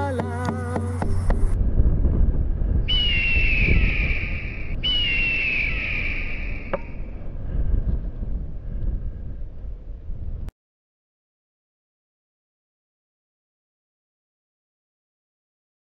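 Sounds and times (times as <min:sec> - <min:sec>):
wind buffeting microphone: 0:00.0 - 0:10.5
descending bird screeches: 0:02.9 - 0:07.0.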